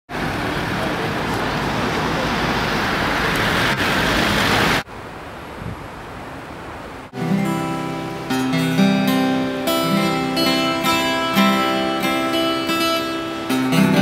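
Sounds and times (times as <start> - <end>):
loud steady rush of noise: 0.1 - 14.0
acoustic guitar strumming chords: 7.2 - 14.0.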